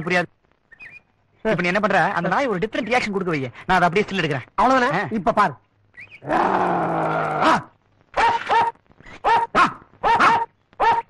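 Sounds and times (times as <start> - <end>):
dog barking: 8.2 - 11.0.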